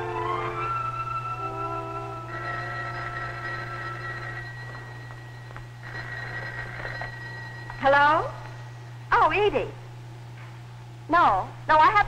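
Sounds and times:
orchestral background music: 0:00.0 - 0:03.6
telephone ringing: 0:00.0 - 0:08.8
woman's voice: 0:07.8 - 0:08.4, 0:09.1 - 0:09.8, 0:11.1 - 0:12.0.

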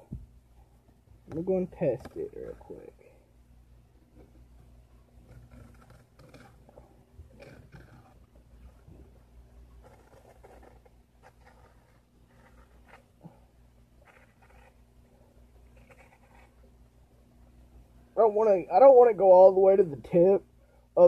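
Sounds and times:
low steady hum: 0:00.0 - 0:21.0
knife scraping a card: 0:09.8 - 0:13.1, 0:14.0 - 0:14.8.

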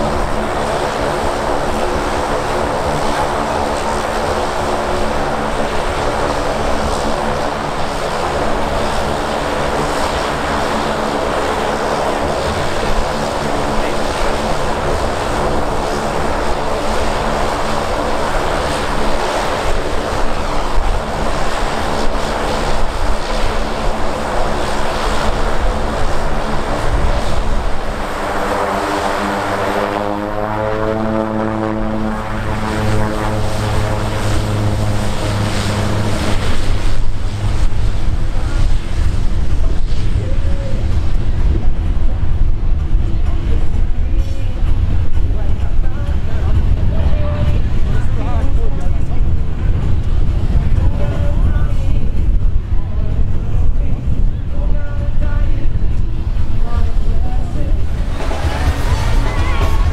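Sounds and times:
turboprop engines droning: 0:00.0 - 0:59.9.

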